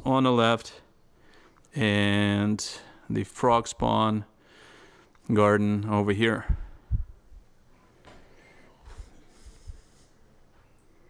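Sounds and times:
faint low thumps: 0:06.4 - 0:07.6.

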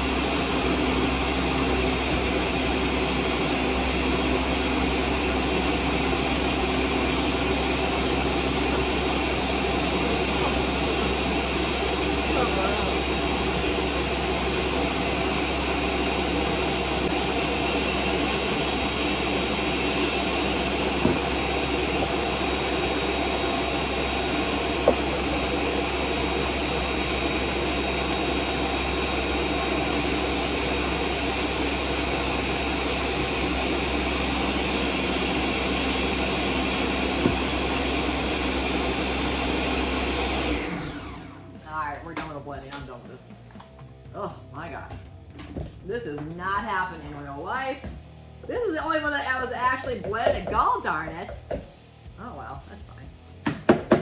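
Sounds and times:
blender running: 0:00.0 - 0:41.6.

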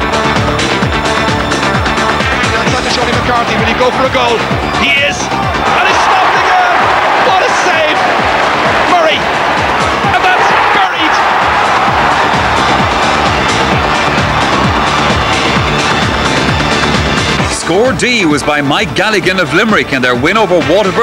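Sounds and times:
upbeat electronic music: 0:00.0 - 0:21.0
stadium crowd cheering: 0:02.1 - 0:19.5.

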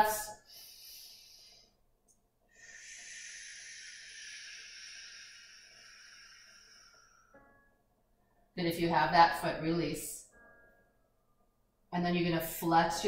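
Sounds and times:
long exhale of breath: 0:02.5 - 0:07.4.

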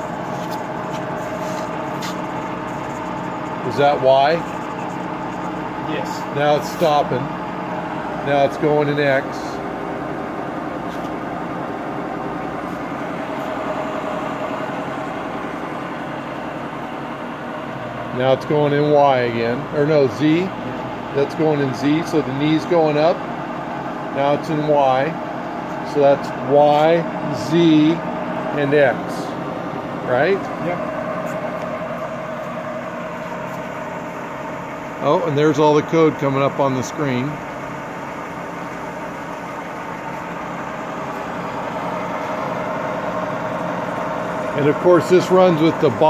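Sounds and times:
milling machine motors humming: 0:00.0 - 0:46.0.

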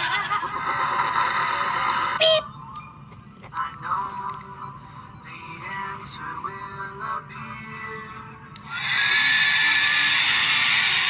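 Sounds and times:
soft cartoon music from speaker: 0:00.0 - 0:11.0.

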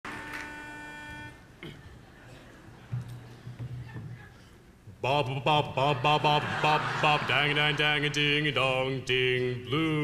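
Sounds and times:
pitch pipe note: 0:00.1 - 0:01.4.

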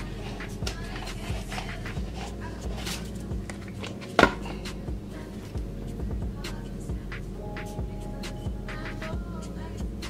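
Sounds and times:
soft background music: 0:00.0 - 0:10.0
plastic bottle crinkling: 0:00.2 - 0:04.6.

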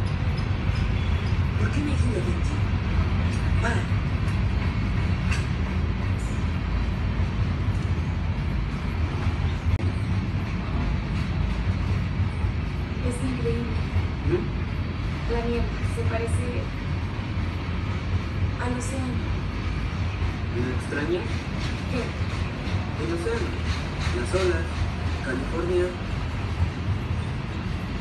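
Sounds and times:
freight train cars rumbling: 0:00.0 - 0:28.0.

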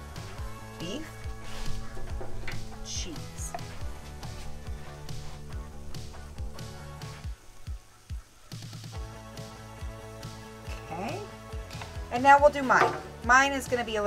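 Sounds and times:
background music with steady beat: 0:00.0 - 0:14.0.

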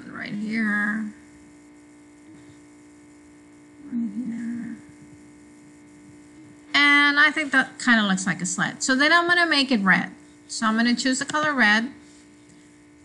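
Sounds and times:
electrical hum: 0:00.0 - 0:13.0
murmured voice: 0:03.8 - 0:04.9.

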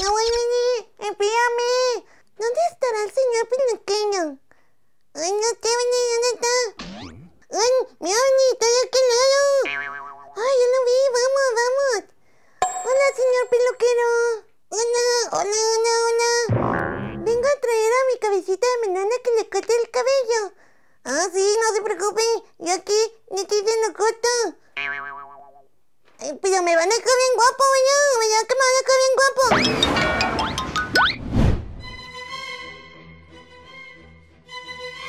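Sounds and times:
squeaky puppet voice: 0:05.2 - 0:12.0
cartoon twanging tone: 0:06.8 - 0:07.4, 0:16.5 - 0:17.5.

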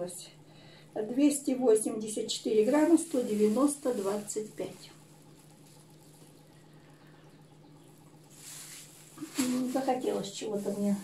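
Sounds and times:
faint steady hum: 0:00.0 - 0:11.0
plastic bag rustling: 0:02.2 - 0:07.2, 0:07.8 - 0:11.0.

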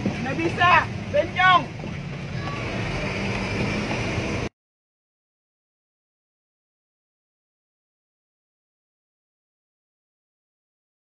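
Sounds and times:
vehicle engine and road noise: 0:00.0 - 0:04.5.

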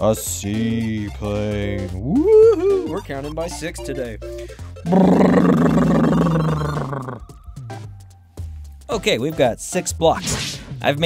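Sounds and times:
rough engine-like roar: 0:04.9 - 0:07.2.

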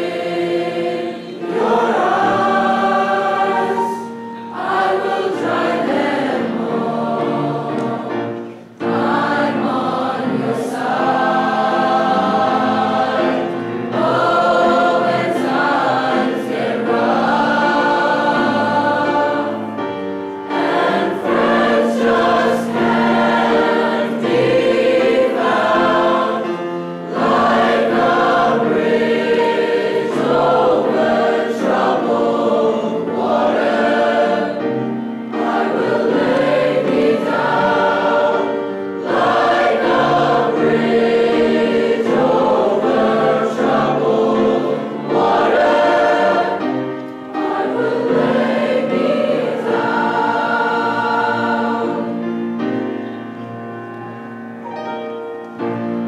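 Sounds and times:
choir singing: 0:00.0 - 0:56.0
grand piano accompaniment: 0:00.0 - 0:56.0.

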